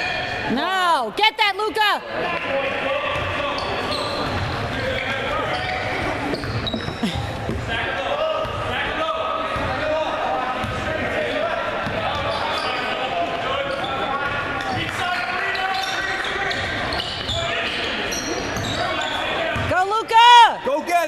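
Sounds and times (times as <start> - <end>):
spectators chatter and calls: 0.0 - 21.0.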